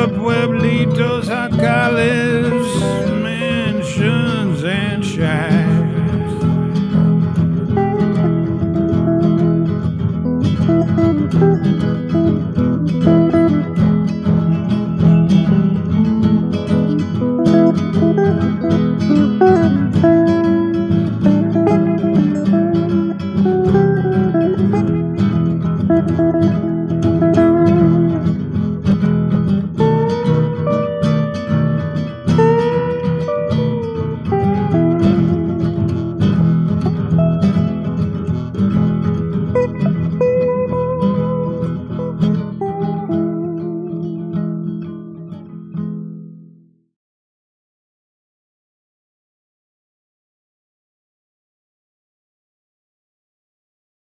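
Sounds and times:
guitar playing melody: 0.0s - 46.8s.

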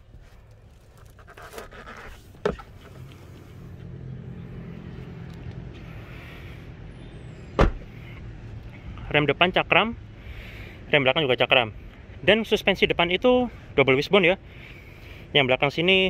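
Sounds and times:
car door shutting with a thud: 7.6s - 7.9s.

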